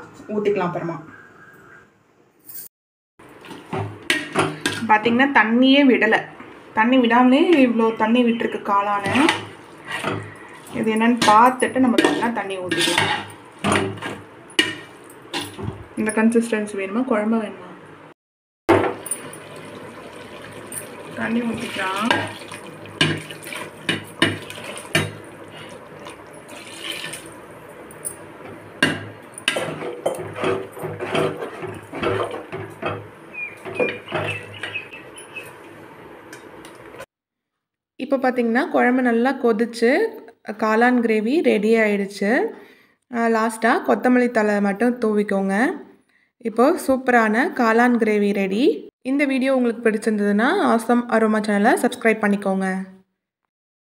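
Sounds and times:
spatula scraping a pot: 9.0 - 15.6, 29.4 - 34.8
water pouring into pot: 18.8 - 27.5.

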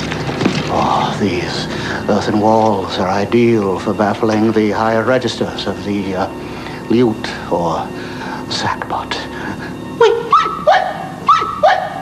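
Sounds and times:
dog barking: 10.0 - 12.0.

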